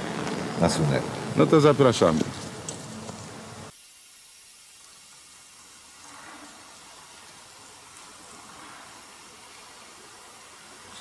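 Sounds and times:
faint steady hiss: 0:00.0 - 0:11.0.

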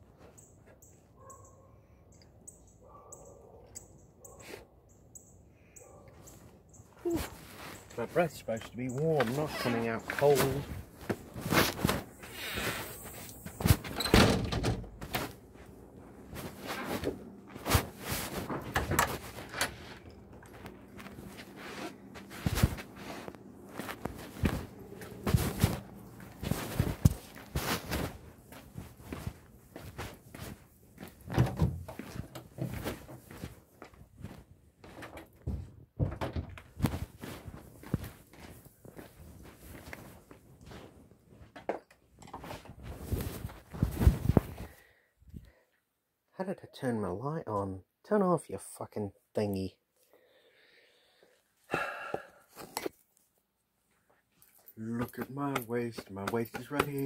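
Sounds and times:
fabric rubbing on microphone: 0:09.2 - 0:13.9, 0:16.2 - 0:30.6, 0:42.4 - 0:44.7
handling knocks and thumps: 0:23.8 - 0:28.2, 0:31.2 - 0:33.2.

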